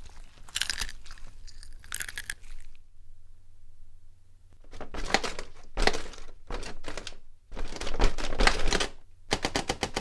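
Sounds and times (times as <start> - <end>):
crunchy chewing: 0.0 - 2.8
low steady hum: 0.0 - 6.6.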